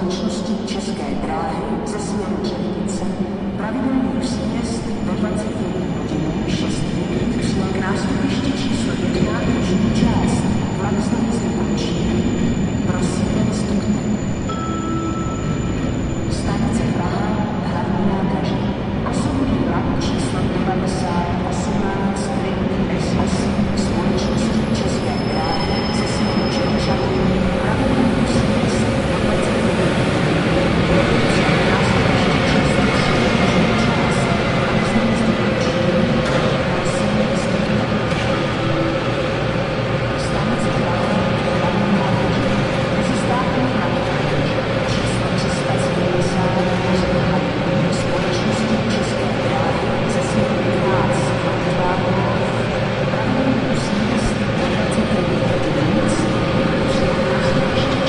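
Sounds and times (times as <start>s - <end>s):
train and platform noise: 0.0s - 58.0s.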